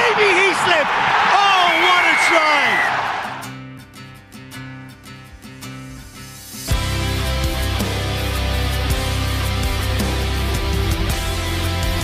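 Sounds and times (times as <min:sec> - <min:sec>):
stadium crowd shouting: 0:00.0 - 0:03.5
background music with steady beat: 0:05.0 - 0:12.0.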